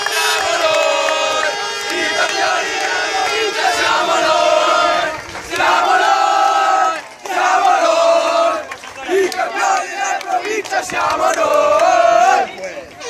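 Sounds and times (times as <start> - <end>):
boys chanting loudly: 0.0 - 12.8.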